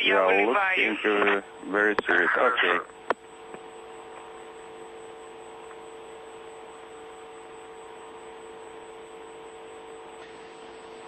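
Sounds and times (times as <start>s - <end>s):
radio channel hiss: 0.0s - 3.2s
electrical hum: 0.0s - 11.0s.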